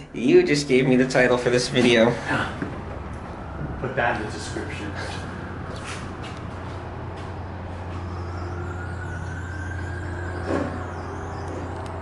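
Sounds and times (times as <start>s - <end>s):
elevator doors whining: 0.0s - 12.0s.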